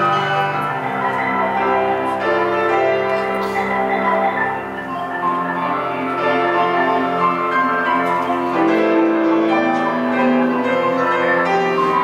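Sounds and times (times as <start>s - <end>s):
marimba played with mallets: 0.0s - 12.0s.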